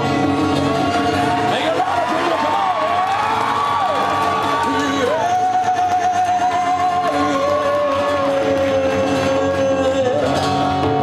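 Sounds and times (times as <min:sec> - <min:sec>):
person singing with vibrato: 0:00.0 - 0:01.9, 0:04.4 - 0:11.0
acoustic guitar: 0:00.0 - 0:11.0.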